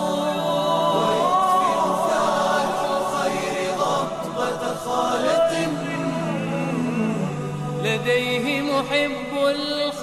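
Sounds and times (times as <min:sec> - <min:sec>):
voices chanting religious song: 0:00.0 - 0:08.6.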